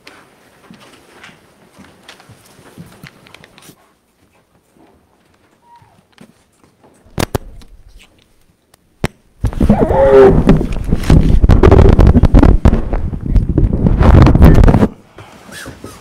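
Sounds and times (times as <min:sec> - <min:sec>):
microphone handling rubbing: 0:09.4 - 0:16.0.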